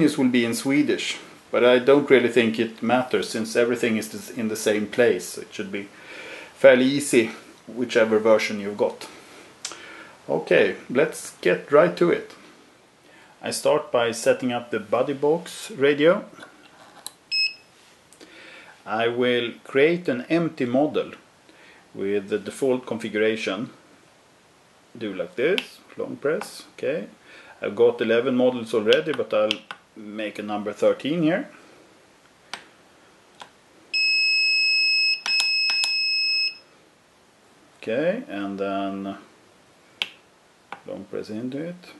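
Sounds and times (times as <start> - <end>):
high-pitched radio transmitter beep: 17.3 - 17.6, 34.0 - 36.7.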